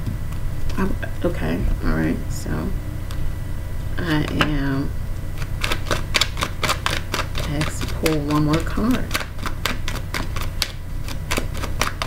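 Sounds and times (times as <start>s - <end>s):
low steady hum: 0.0s - 12.0s
cards being shuffled: 5.4s - 12.0s.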